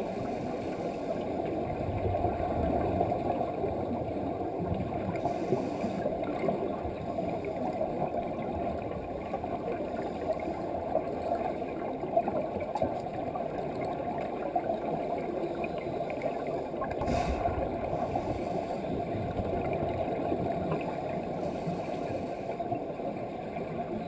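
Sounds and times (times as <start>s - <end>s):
underwater bubbles rising: 0.0s - 24.0s.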